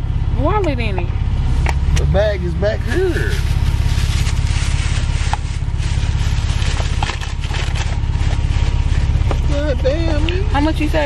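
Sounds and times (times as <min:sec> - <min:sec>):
car engine idling: 0:00.0 - 0:11.0
person speaking: 0:02.0 - 0:03.6.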